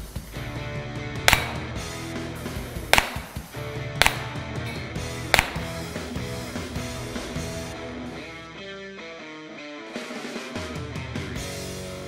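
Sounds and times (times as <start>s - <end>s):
background music: 0.0s - 12.0s
handgun shots: 1.3s - 1.8s, 2.9s - 6.0s.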